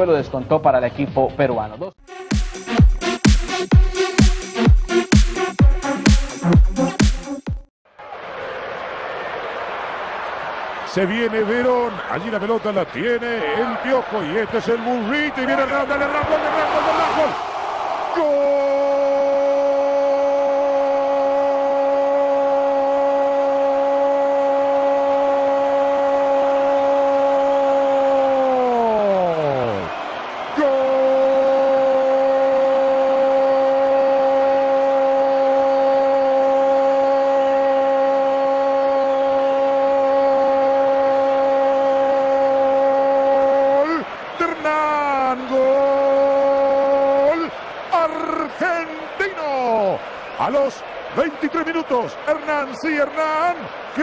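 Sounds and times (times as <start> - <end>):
commentator shouting goal: 10.9 - 17.4, 18.1 - 54.0.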